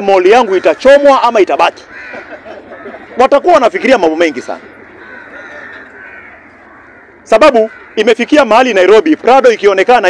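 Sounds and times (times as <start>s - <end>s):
crow cawing: 0.0s - 8.8s.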